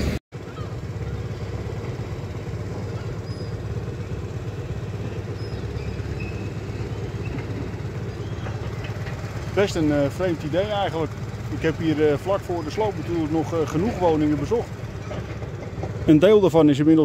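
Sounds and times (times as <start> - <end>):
motorbike engine idling: 0.4 - 17.0.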